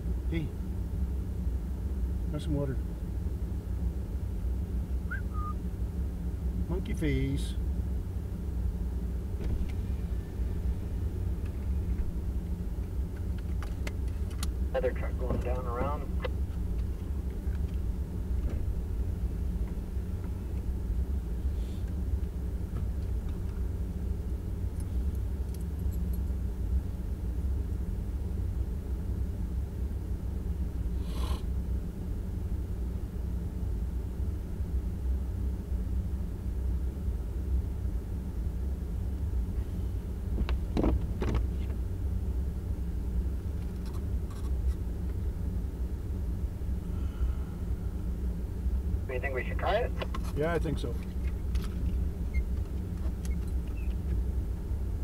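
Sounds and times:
engine idling: 0:00.0 - 0:55.0.

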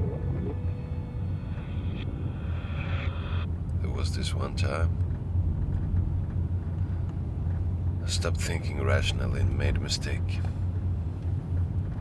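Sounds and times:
faint held musical tone: 0:00.0 - 0:04.8
car driving rumble: 0:00.0 - 0:12.0.

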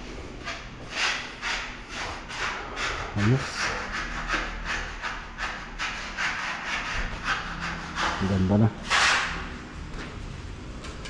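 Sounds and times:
rasping strokes on surface: 0:00.4 - 0:09.3.

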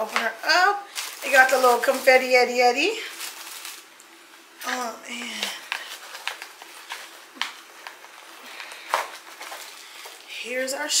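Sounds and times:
packaging rustling: 0:00.0 - 0:10.3.

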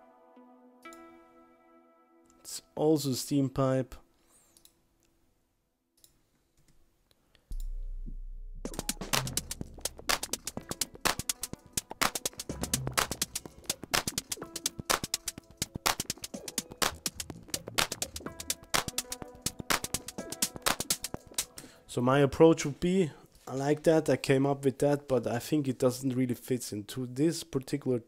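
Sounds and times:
deep bass tone: 0:07.5 - 0:10.5
clicky drum-machine percussion: 0:07.5 - 0:21.6.

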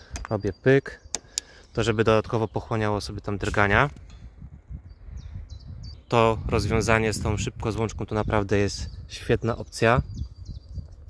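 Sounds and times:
faint bird chirps: 0:04.2 - 0:06.5.

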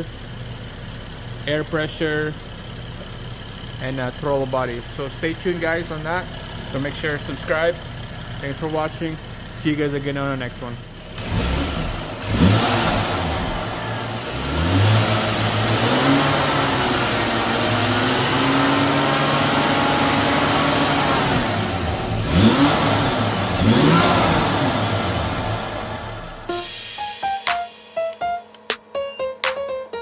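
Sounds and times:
car engine revving: 0:03.0 - 0:26.5.

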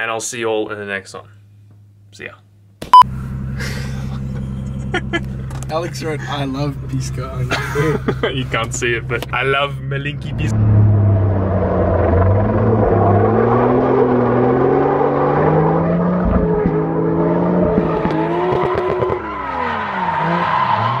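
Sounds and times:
car engine revving hard: 0:10.3 - 0:21.0.

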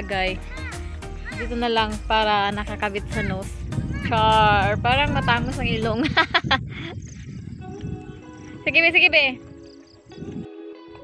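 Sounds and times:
woman laughing: 0:05.8 - 0:07.0.

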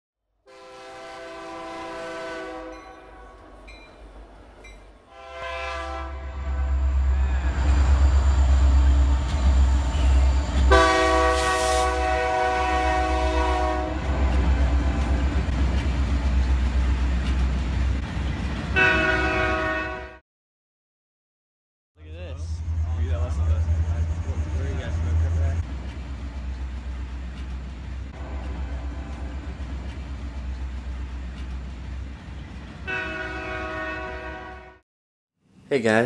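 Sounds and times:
locomotive air horn blasts: 0:00.5 - 0:03.4, 0:05.1 - 0:06.6, 0:10.7 - 0:14.2, 0:18.8 - 0:20.2, 0:32.9 - 0:34.8
train rumbling past: 0:00.5 - 0:20.2, 0:22.0 - 0:34.8.

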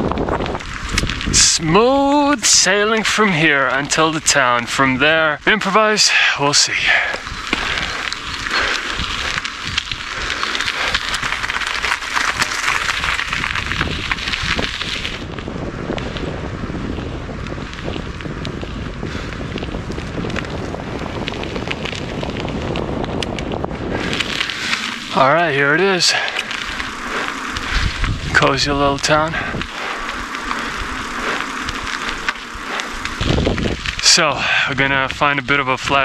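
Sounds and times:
bicycle ride rumble: 0:00.0 - 0:36.0
wind rushing over microphone: 0:00.0 - 0:36.0.

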